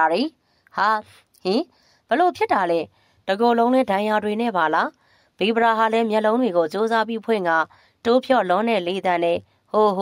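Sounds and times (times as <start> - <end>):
narrator reading aloud: 0.0 - 10.0.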